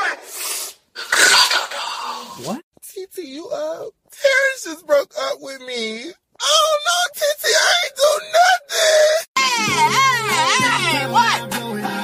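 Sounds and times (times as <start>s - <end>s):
man wailing and crying: 3.5s - 11.1s.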